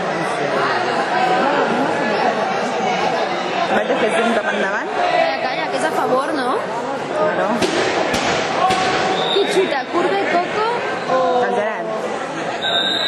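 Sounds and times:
spectators chattering and calling out: 0:00.0 - 0:13.0
sharp knocks: 0:07.6 - 0:09.2.

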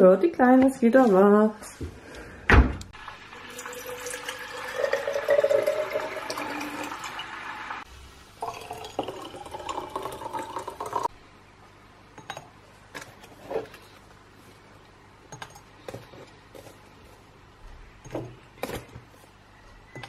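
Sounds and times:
water pouring into bottle: 0:03.4 - 0:07.4, 0:08.4 - 0:11.1.

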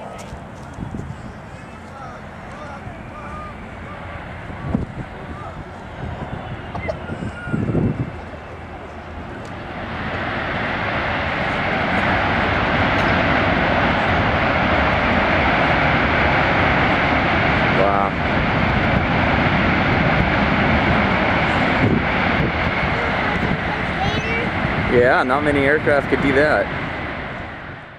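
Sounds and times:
jet engines at high power: 0:00.0 - 0:27.9.

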